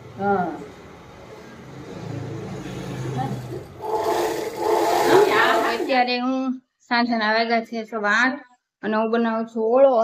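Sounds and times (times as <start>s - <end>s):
indistinct voices: 3.0s - 6.2s.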